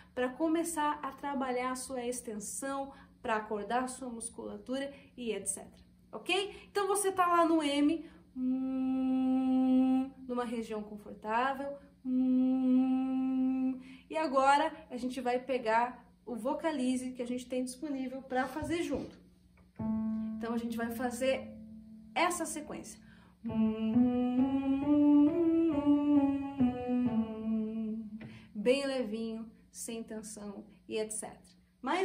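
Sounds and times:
woman humming a scale: 8.4 - 10.1, 12.1 - 13.8
woman humming: 8.4 - 10.2, 12.0 - 13.8, 23.4 - 28.4
keyboard notes: 19.7 - 28.4.

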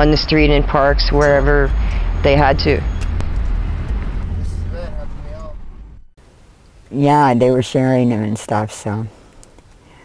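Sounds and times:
low vehicle rumble: 0.0 - 6.8
traffic hiss: 4.2 - 5.6.

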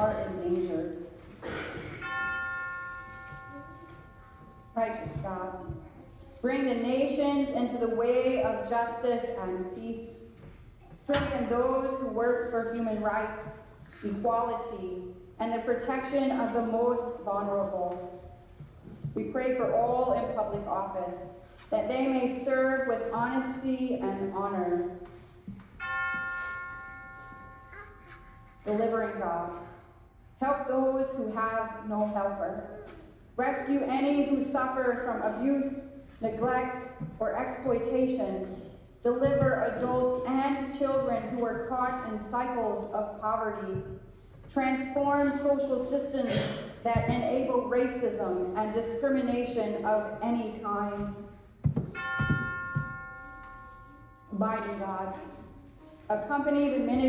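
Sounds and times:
small bell ringing: 2.0 - 5.1, 25.7 - 28.8, 51.2 - 55.8.

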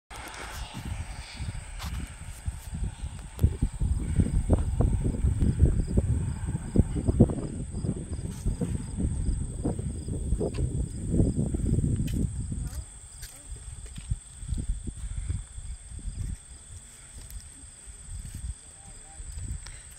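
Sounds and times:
wind buffeting microphone: 0.1 - 19.9
rapid insect chirping: 0.5 - 19.9.

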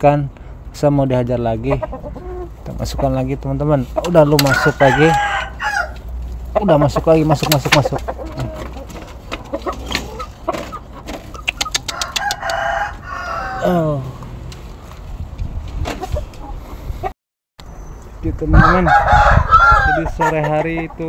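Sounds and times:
knocks and scuffling in coop: 1.8 - 13.0, 14.5 - 16.8.

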